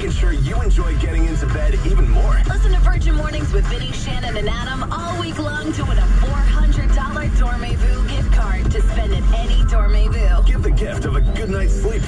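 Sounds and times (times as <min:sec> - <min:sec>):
low rumble of moving car: 0:00.0 - 0:12.0
song on car radio: 0:00.0 - 0:12.0.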